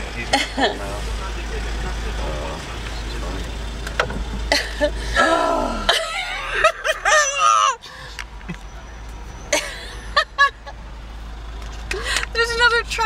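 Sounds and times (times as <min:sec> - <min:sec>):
car rumble inside cabin: 0:00.0 - 0:13.0
person laughing: 0:04.5 - 0:08.7, 0:09.6 - 0:10.7.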